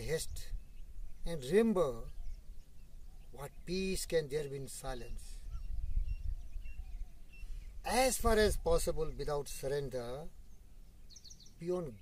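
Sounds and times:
man talking: 0.0s - 0.6s, 1.2s - 2.1s, 3.4s - 5.4s, 7.8s - 10.3s, 11.6s - 12.0s
wind rumble on microphone: 0.0s - 4.0s, 4.8s - 9.4s
faint bird chirps: 0.0s - 12.0s.

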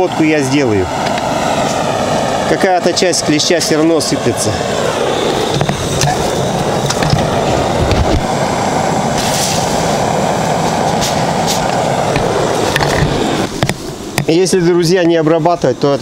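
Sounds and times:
smoke cannon rushing hiss: 0.0s - 16.0s.

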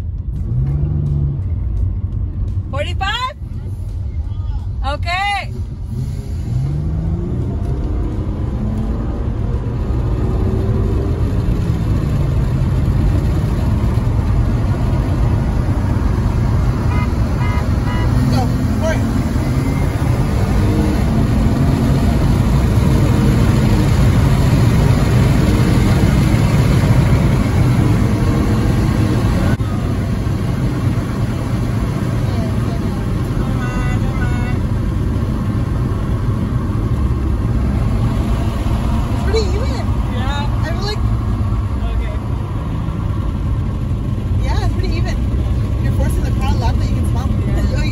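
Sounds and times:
car engine under full throttle: 0.0s - 47.9s
road and tyre rumble: 0.0s - 47.9s.

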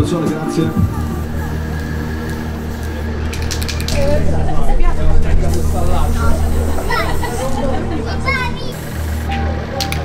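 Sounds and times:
steady low hum: 0.0s - 10.0s
spray paint can hissing: 0.7s - 4.2s, 5.4s - 7.8s, 8.7s - 10.0s.

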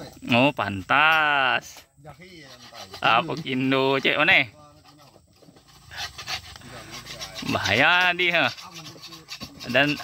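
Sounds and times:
sharpener rasping along steel blade: 2.3s - 4.2s, 5.6s - 10.0s.

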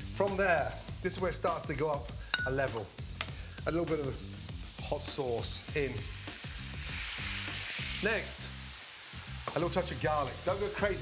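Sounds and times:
background music: 0.0s - 11.0s
onion sizzling in frying pan: 0.0s - 11.0s
sauce pouring: 5.4s - 10.5s.

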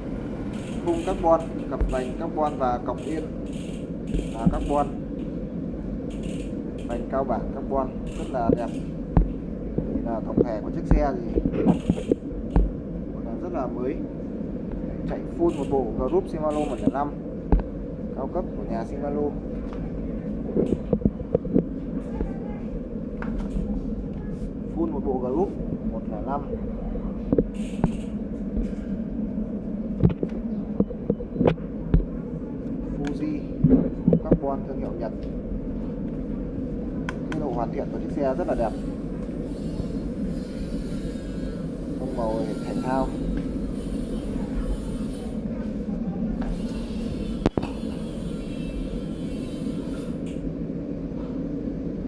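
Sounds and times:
low background rumble: 0.0s - 52.0s
steady low hum: 0.0s - 52.0s.

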